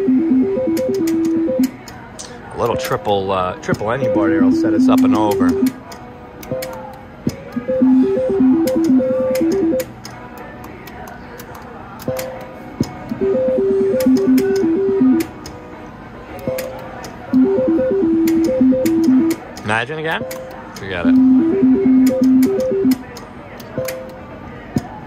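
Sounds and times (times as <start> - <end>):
slot machine beeping tune: 0.0 - 1.8, 2.6 - 5.8, 7.5 - 10.0, 13.1 - 15.3, 16.4 - 23.1, 23.7 - 24.2
slot machine reel clicks: 0.2 - 2.0, 2.6 - 10.1, 13.1 - 15.4, 16.4 - 24.2.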